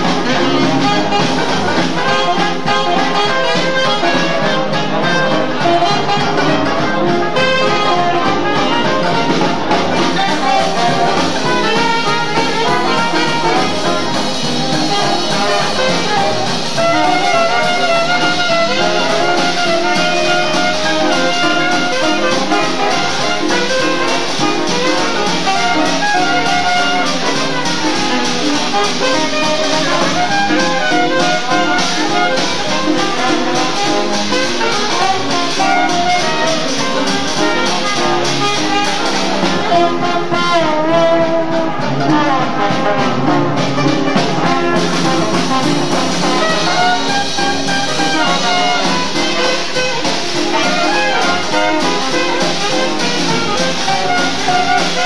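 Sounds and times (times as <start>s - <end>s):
jazz band playing: 0.0s - 55.0s.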